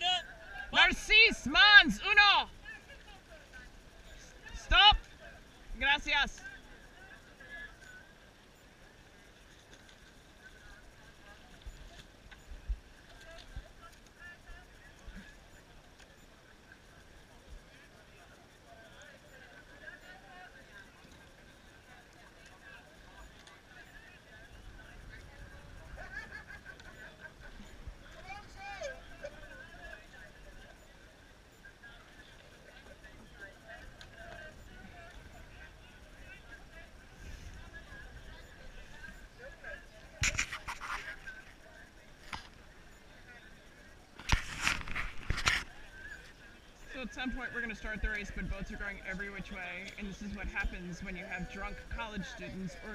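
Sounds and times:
chatter of many voices: 0.0 - 52.9.

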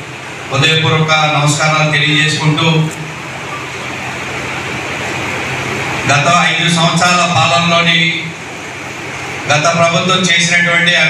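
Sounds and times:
steady rushing room tone: 0.0 - 11.0.

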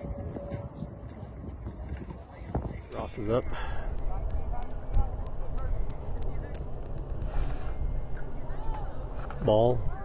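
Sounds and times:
distant voices: 0.0 - 10.0
wind rumbling on microphone: 0.0 - 10.0.

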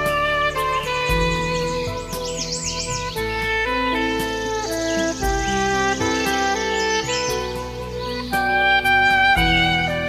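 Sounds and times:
sustained musical backing: 0.0 - 10.0
trumpet melody: 0.0 - 10.0
bird calling: 0.5 - 8.4.

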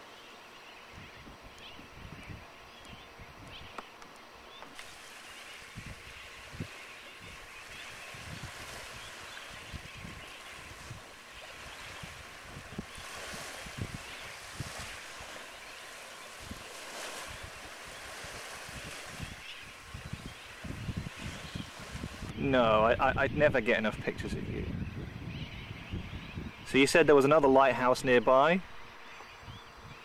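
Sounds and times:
wind buffeting microphone: 0.9 - 3.8, 4.8 - 27.1
distant surf: 3.7 - 24.6
wind hissing: 4.7 - 24.9.

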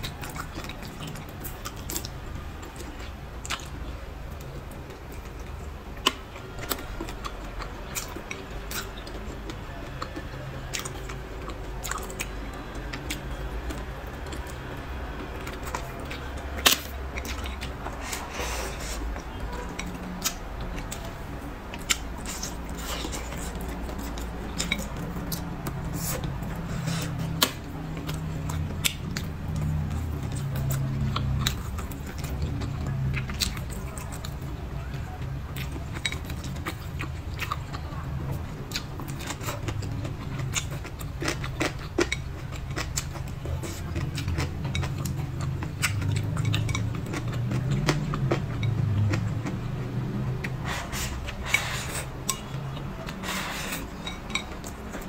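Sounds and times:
wet chewing: 0.0 - 55.0.

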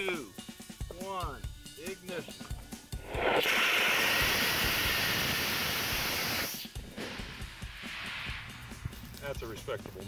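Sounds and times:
rocket motor hissing: 3.0 - 8.8.

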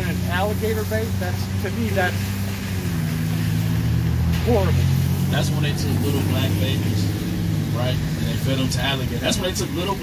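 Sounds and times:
low engine hum: 0.0 - 10.0
traffic on a wet street: 0.0 - 10.0.

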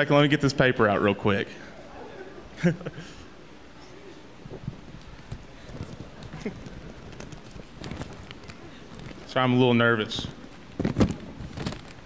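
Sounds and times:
murmur of voices: 1.5 - 2.6, 3.2 - 7.4
paper and microphone handling: 4.4 - 12.0.

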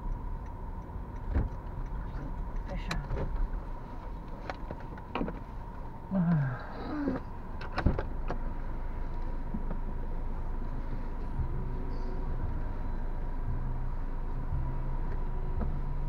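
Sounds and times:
car engine idling: 0.0 - 16.0
deeper hum: 5.5 - 16.0.

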